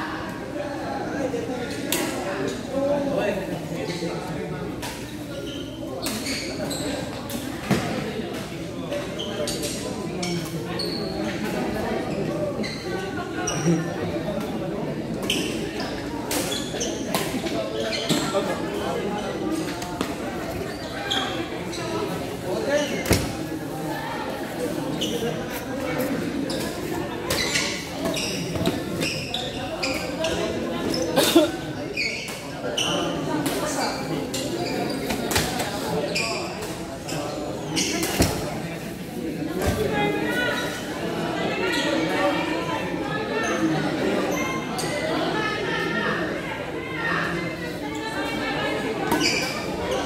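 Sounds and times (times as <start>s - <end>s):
murmur of spectators' voices: 0.0s - 50.0s.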